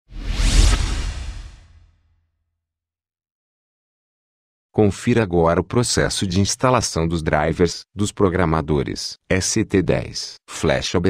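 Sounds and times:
whoosh with deep rumble: 0.1s - 2.0s.

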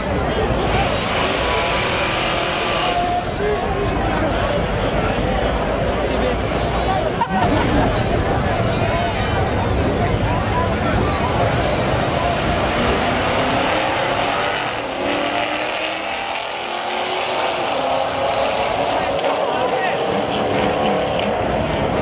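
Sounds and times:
engines accelerating at full throttle: 0.0s - 22.0s.

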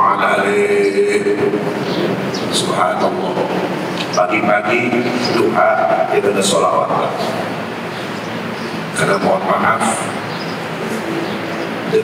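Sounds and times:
man speaking over pa: 0.0s - 1.7s, 2.4s - 7.5s, 8.9s - 10.3s
steady rushing noise: 0.0s - 12.0s.

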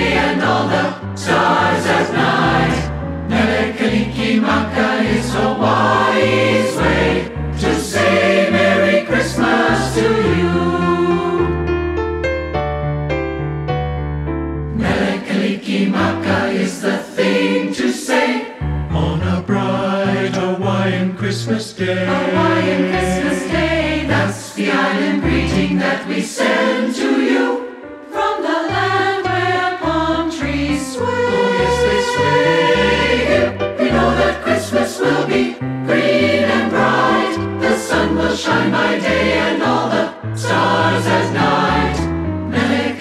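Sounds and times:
choir singing: 0.0s - 11.6s, 14.7s - 43.0s
instrumental accompaniment: 25.2s - 43.0s.

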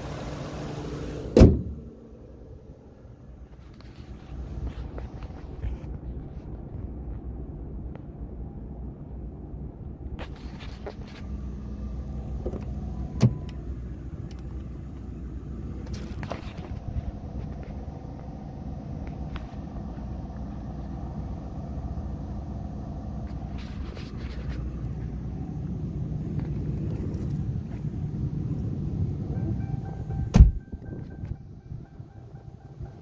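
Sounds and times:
steady low rumble: 0.0s - 33.0s
car door latch clicking: 1.4s - 1.8s, 30.2s - 31.2s.

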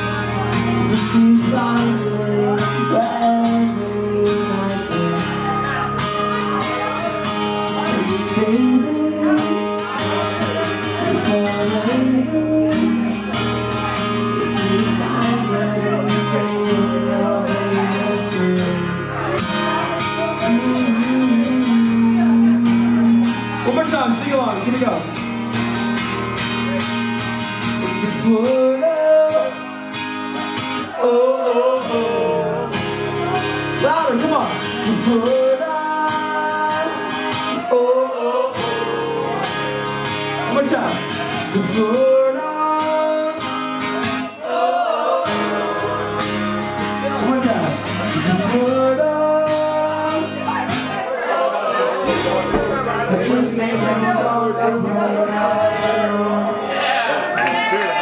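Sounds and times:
person singing: 0.0s - 13.5s, 14.2s - 23.6s, 30.8s - 33.4s, 41.3s - 43.5s, 48.0s - 56.8s
strummed acoustic guitar: 0.0s - 58.0s
drums: 52.1s - 53.2s.

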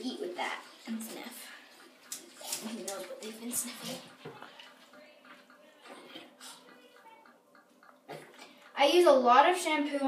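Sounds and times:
wet scrubbing of dog with shampoo: 0.0s - 6.9s.

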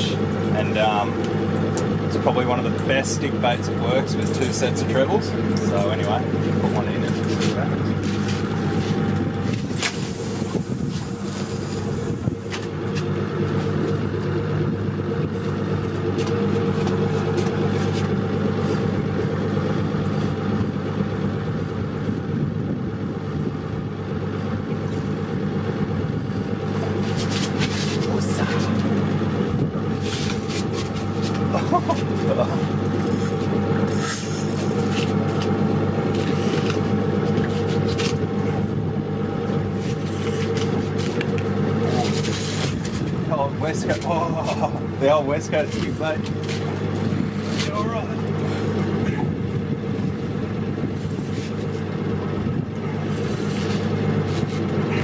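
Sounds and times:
outboard motor idling: 0.0s - 55.0s.

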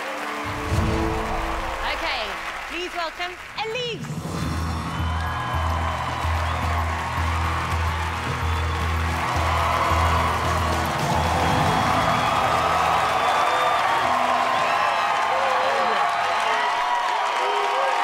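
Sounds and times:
audience cheering and whooping: 0.0s - 2.8s, 4.2s - 18.0s
audience applauding: 0.0s - 18.0s.

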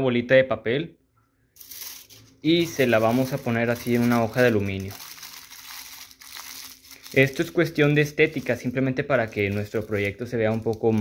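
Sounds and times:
aluminium foil crinkling: 1.6s - 11.0s.

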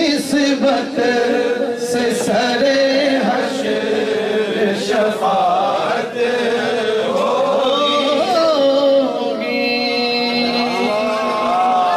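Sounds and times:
man singing into a microphone: 0.0s - 11.9s.

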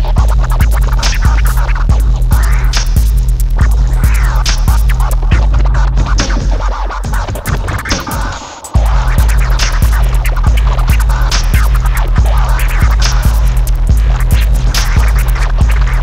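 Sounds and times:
electronic hip hop beat: 0.0s - 16.0s
turntable scratching: 0.0s - 16.0s.

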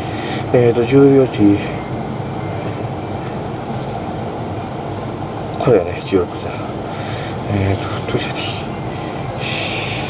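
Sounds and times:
railway station rumble: 0.0s - 10.0s.

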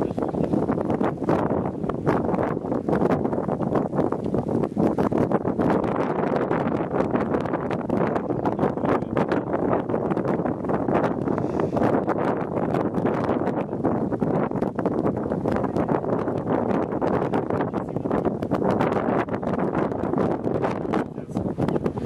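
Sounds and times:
strong wind buffeting microphone: 0.0s - 22.0s.

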